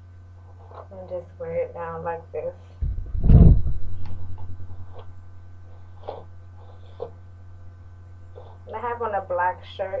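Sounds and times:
steady low hum: 0:00.0 - 0:10.0
microphone handling rustling bump: 0:02.8 - 0:05.1.

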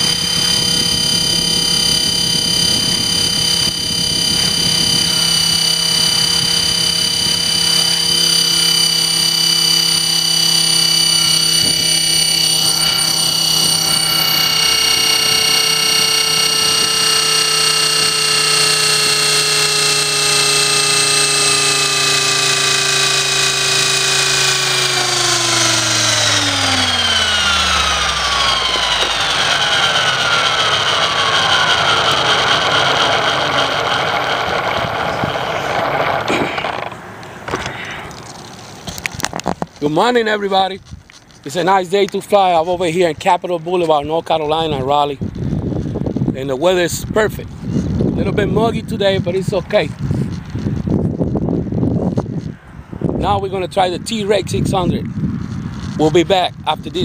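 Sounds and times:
rotor whooshing: 0:00.0 - 0:53.2
rc helicopter motor whine: 0:00.0 - 0:57.0.

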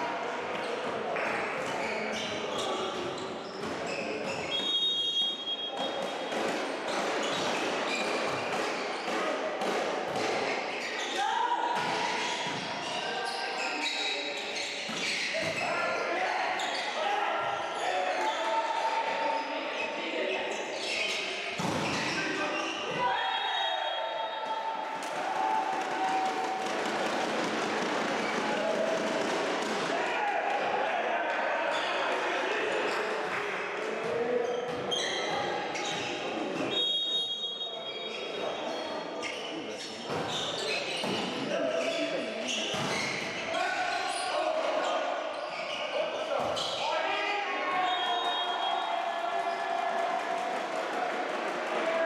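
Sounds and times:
shoes squeaking on court: 0:01.6 - 0:04.8, 0:12.1 - 0:15.6, 0:34.4 - 0:36.3, 0:38.1 - 0:43.5, 0:44.9 - 0:46.8.

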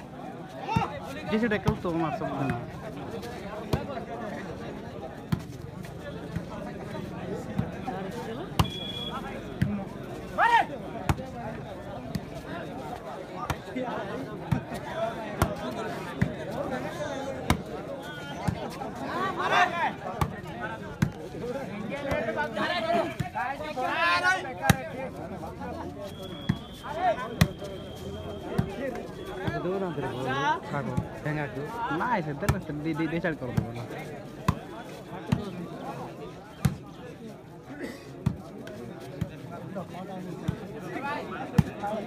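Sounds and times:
crowd chatter: 0:00.0 - 0:42.0
spectators' voices: 0:00.0 - 0:42.0.

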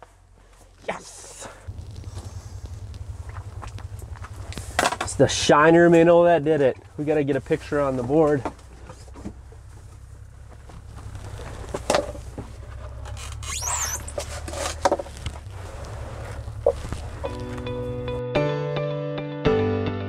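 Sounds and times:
low hum: 0:01.0 - 0:18.2
brief high squeak: 0:13.2 - 0:14.5
guitar music: 0:17.0 - 0:20.0.

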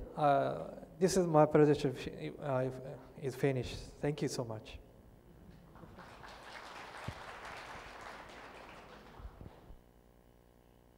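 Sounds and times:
faint audience applause: 0:05.6 - 0:09.8.

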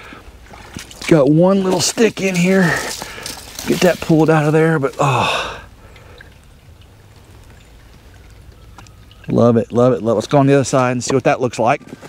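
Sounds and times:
creek water trickling over rocks: 0:00.0 - 0:11.8.

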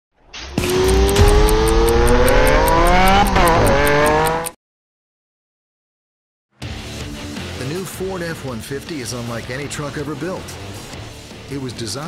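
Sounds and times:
vehicle engine accelerating hard: 0:00.4 - 0:04.6
fast even ticking: 0:00.6 - 0:04.5.

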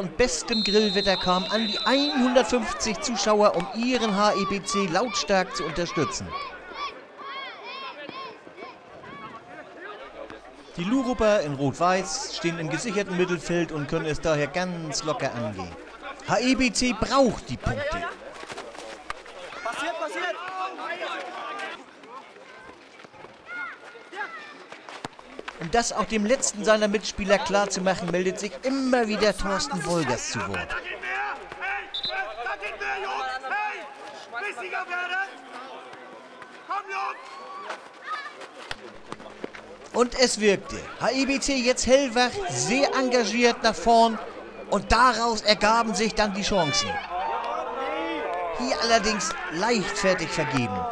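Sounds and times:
distant players shouting: 0:00.0 - 0:09.6, 0:26.0 - 0:50.9
man shouting: 0:00.4 - 0:06.5.

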